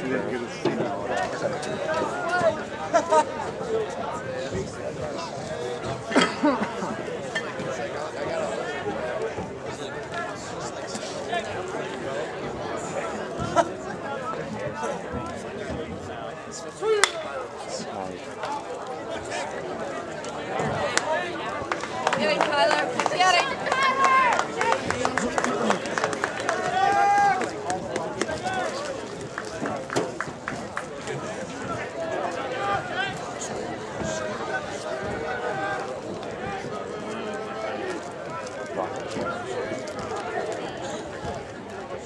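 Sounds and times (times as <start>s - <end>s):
voices talking and calling out: 0.0s - 42.0s
drawn-out shout: 22.5s - 24.9s, 26.3s - 27.5s.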